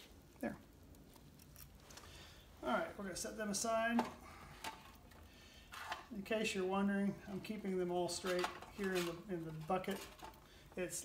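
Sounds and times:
metal parts clattering: 8.1 - 10.4.

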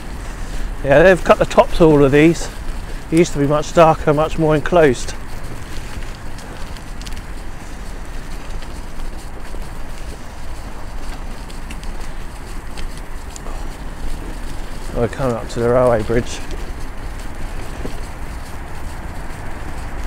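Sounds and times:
bicycle tyres rolling on dirt: 0.0 - 20.0
bike clicks and rattles: 0.0 - 20.0
wind buffeting microphone: 0.0 - 20.0.

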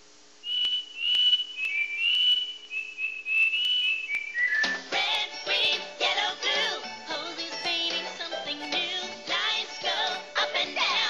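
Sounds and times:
person whistling a tune: 3.4 - 4.8
busy bright music: 4.6 - 11.0.

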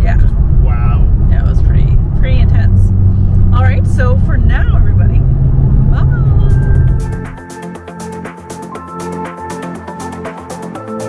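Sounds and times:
road rumble inside car: 0.0 - 7.4
music: 3.6 - 11.0.

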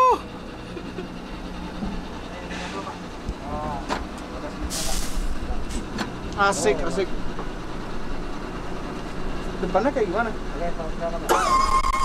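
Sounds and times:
vehicle engine low drone: 0.0 - 12.0
short hiss: 4.7 - 5.3.

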